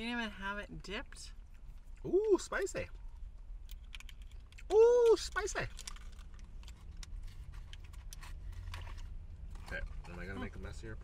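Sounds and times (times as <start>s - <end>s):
low rumble inside a car: 0.0s - 11.0s.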